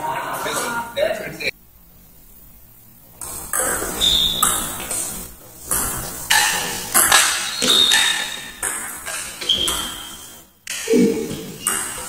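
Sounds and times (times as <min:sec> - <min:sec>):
table tennis ball hits: 0:03.2 - 0:12.0.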